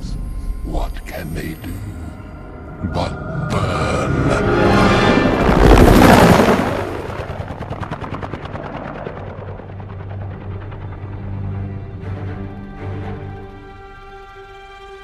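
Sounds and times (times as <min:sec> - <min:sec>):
low orchestral drone: 0:00.0 - 0:15.0.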